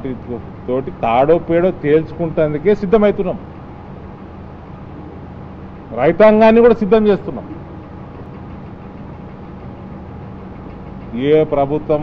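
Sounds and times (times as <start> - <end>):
engine-like low hum with hiss: 0.0 - 12.0.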